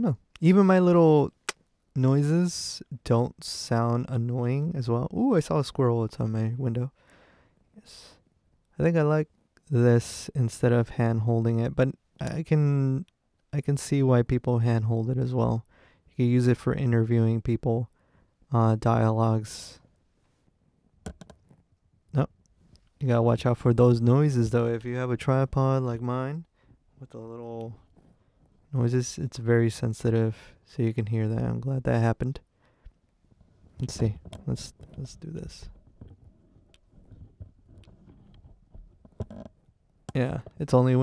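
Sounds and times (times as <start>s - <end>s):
tripod legs creaking and clicking: 35.7s - 39.6s.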